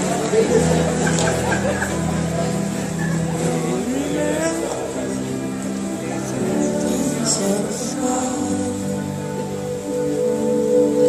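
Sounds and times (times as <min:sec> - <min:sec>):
band holding a low chord: 0:00.0 - 0:11.0
person laughing: 0:00.4 - 0:02.3.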